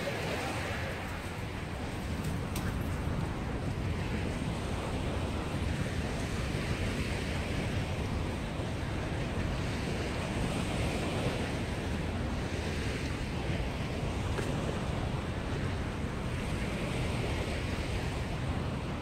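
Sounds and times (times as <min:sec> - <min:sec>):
small waves washing on sand: 0:00.0 - 0:19.0
wind rumbling on microphone: 0:00.0 - 0:19.0.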